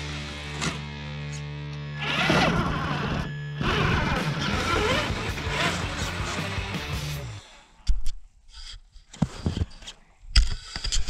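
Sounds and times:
electric motor whining: 0:01.7 - 0:07.7
background music: 0:03.7 - 0:07.4.

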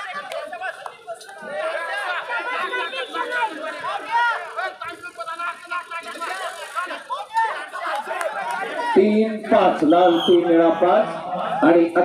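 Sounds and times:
overlapping chatter: 0:00.0 - 0:12.0.

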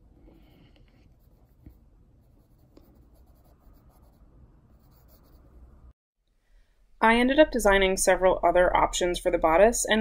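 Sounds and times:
pencil scratching on paper: 0:00.8 - 0:05.5.

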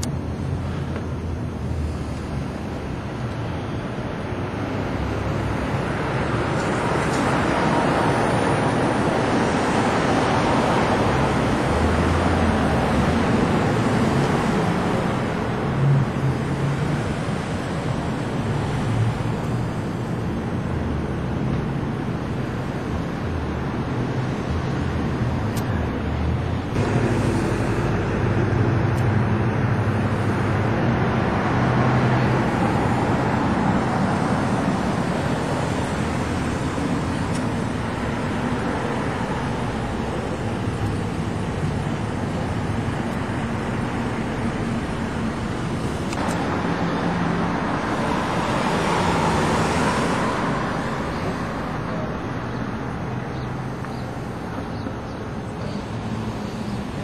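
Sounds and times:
cars driving past: 0:00.0 - 0:57.0.

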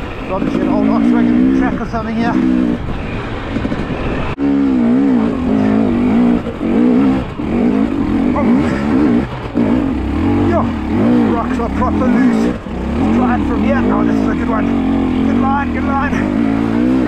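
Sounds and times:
dirt bike engine revving: 0:00.3 - 0:17.0.

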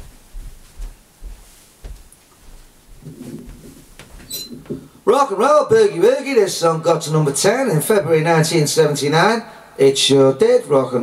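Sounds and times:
footsteps on carpet: 0:00.0 - 0:04.9
faint low hum: 0:00.0 - 0:05.1.

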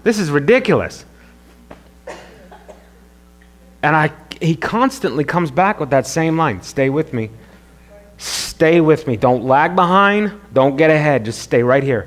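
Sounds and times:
low electrical hum: 0:00.0 - 0:12.0
person coughing: 0:02.0 - 0:03.0.

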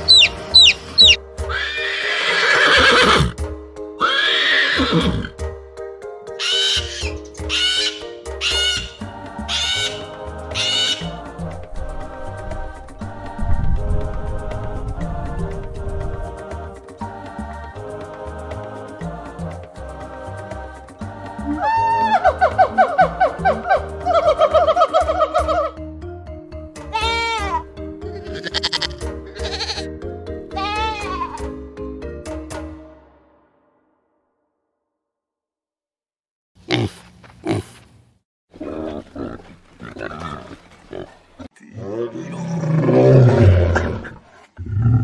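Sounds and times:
background music with bass line: 0:00.0 - 0:01.7, 0:05.3 - 0:33.0
parrot squawking: 0:00.0 - 0:01.8, 0:06.4 - 0:11.1
lambs bleating: 0:00.1 - 0:03.2, 0:06.4 - 0:10.0, 0:27.0 - 0:29.9.

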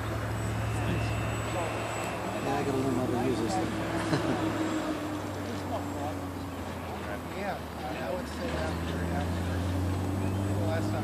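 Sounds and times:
thin high whine: 0:00.0 - 0:06.1.

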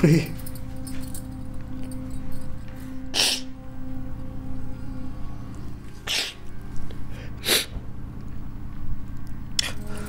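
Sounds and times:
person sniffing: 0:03.1 - 0:03.6, 0:06.0 - 0:06.4, 0:07.4 - 0:07.8.

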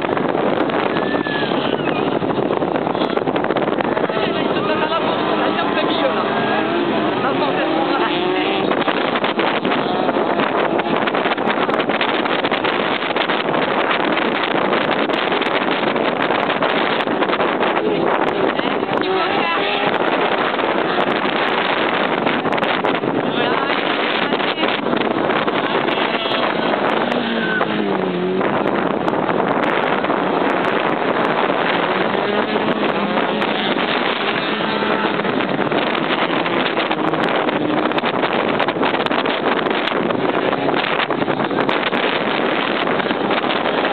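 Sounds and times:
race car engines revving: 0:00.0 - 0:43.9.

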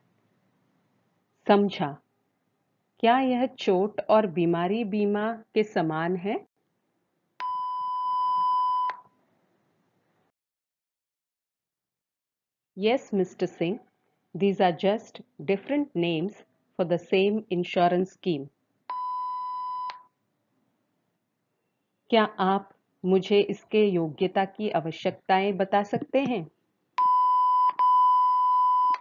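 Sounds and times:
electronic beep: 0:27.0 - 0:29.0.

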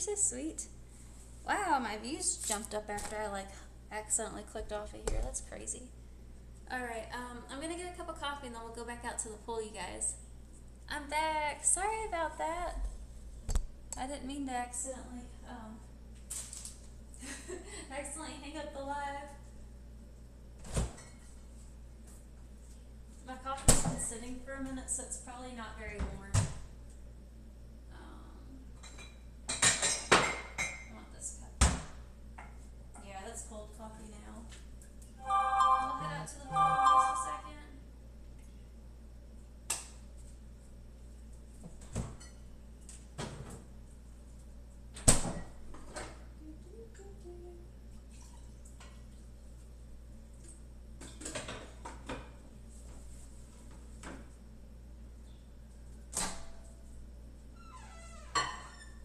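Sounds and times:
brief ringing tone: 0:35.2 - 0:37.5.

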